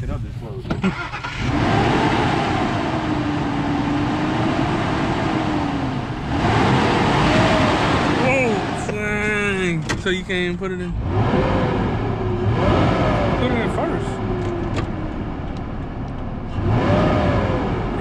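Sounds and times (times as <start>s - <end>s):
truck engine revving: 0.8s - 18.0s.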